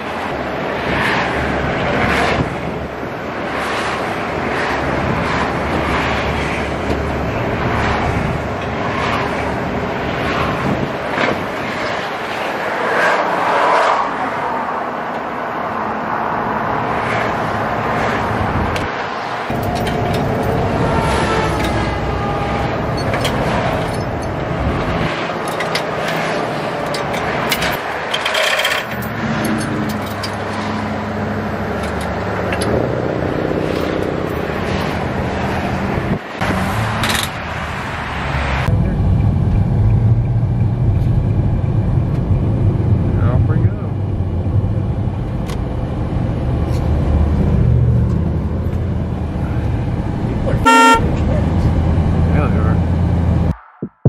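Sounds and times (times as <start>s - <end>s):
car driving at highway speed: 0.0s - 54.0s
highway traffic noise: 0.0s - 54.0s
vehicle horn toot: 20.8s - 22.8s, 50.6s - 51.2s.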